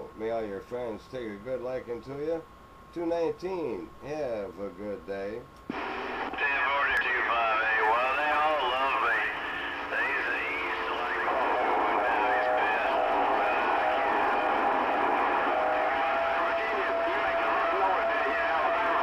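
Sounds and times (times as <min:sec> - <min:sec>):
garbled voices over radio speaker: 0:05.7 - 0:14.6, 0:16.1 - 0:19.0
steady whistle tone: 0:07.2 - 0:19.0.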